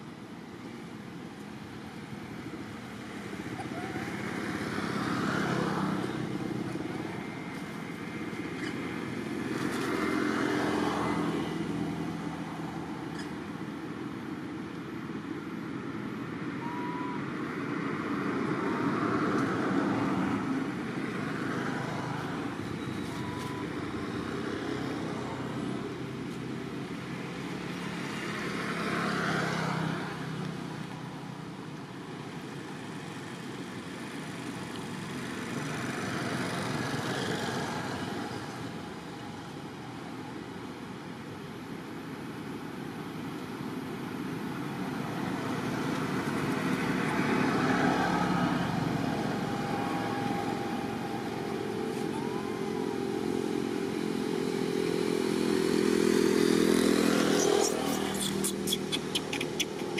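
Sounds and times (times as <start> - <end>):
motor vehicles passing: 0.0 - 42.2, 43.0 - 59.9
steady traffic hum: 0.0 - 59.9.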